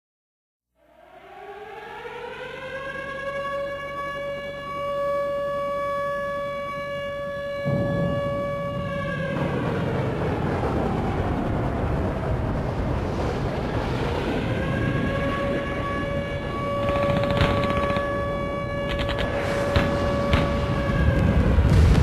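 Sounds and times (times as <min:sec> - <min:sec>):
siren-like tone gliding up: 0:00.8 - 0:09.3, 0:14.4 - 0:22.0
loud even rushing noise: 0:18.6 - 0:22.0.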